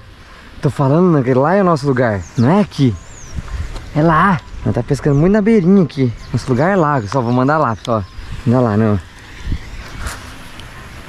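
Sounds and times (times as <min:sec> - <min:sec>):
fishing rod swishing: 0:09.5 - 0:10.6.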